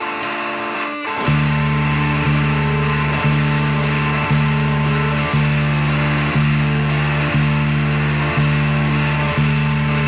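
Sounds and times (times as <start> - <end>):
electric guitars and bass chords: 0.0 - 10.0
drums: 1.1 - 10.0.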